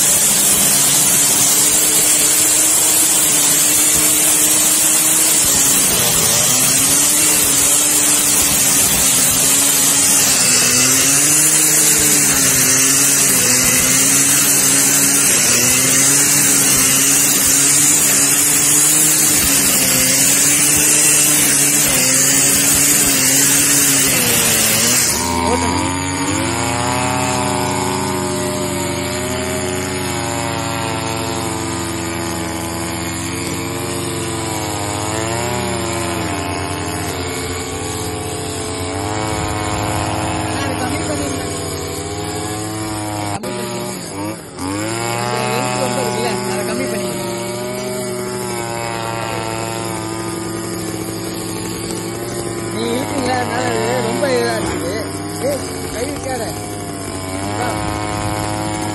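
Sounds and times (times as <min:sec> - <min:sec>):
brush cutter engine revving: 0:00.0 - 0:58.9
brush cutter engine running: 0:00.0 - 0:58.9
grass cutting hiss: 0:00.0 - 0:58.9.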